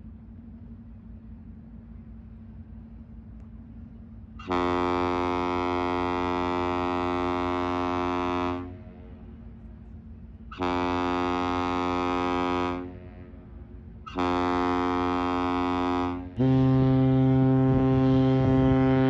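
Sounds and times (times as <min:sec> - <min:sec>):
ship horn blasts: 0:04.4 - 0:09.8, 0:10.5 - 0:19.0.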